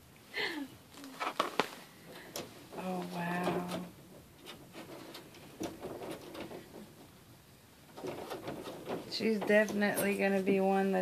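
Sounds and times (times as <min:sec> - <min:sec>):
doll rustling and clicking: 0:00.9 - 0:11.0.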